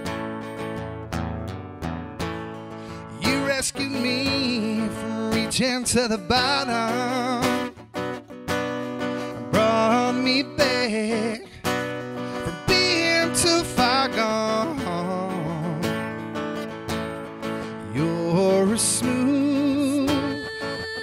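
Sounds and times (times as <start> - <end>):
strummed acoustic guitar: 0.0 - 21.0
man singing a country ballad: 2.8 - 8.1, 9.0 - 16.8, 17.4 - 21.0.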